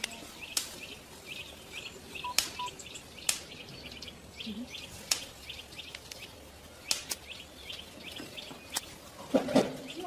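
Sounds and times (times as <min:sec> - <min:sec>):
short high chirping calls: 0:00.4 - 0:03.0.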